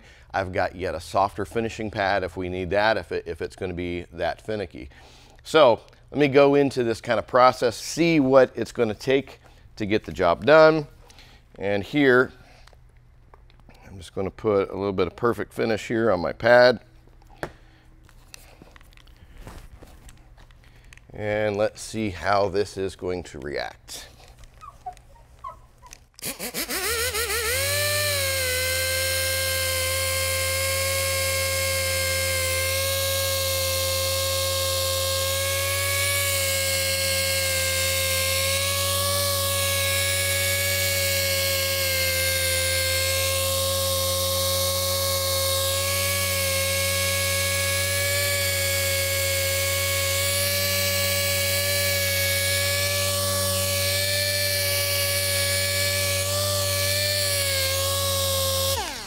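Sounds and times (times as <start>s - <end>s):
polisher running: 26.3s - 59.0s.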